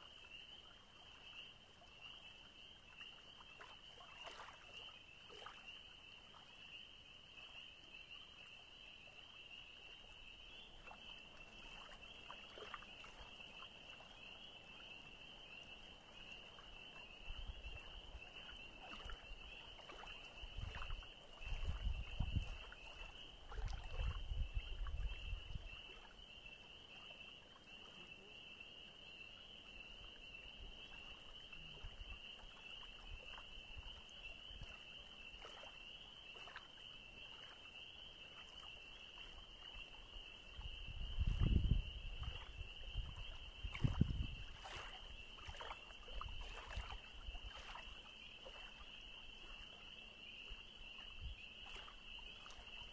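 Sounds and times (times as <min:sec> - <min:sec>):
water lapping on sand: 0:17.9 - 0:26.5, 0:30.8 - 0:52.9
wind buffeting microphone: 0:21.4 - 0:22.6, 0:40.6 - 0:44.7.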